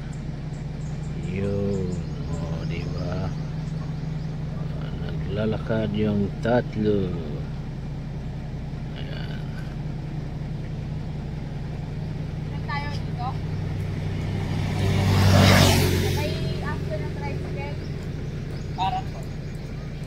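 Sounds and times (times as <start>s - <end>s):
vehicle passing by: 0.0s - 7.6s, 8.9s - 20.0s
low engine hum: 0.0s - 20.0s.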